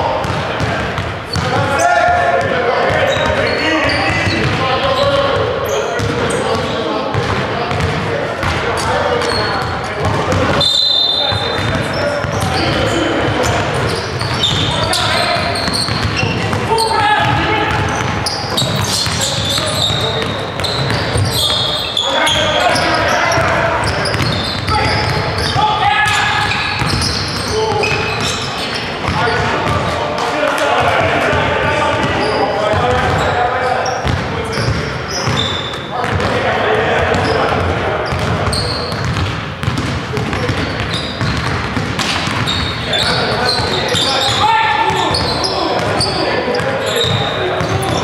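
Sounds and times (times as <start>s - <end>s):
players calling out: 0.0s - 48.0s
basketball bouncing on hardwood: 15.4s - 21.4s, 37.1s - 42.8s.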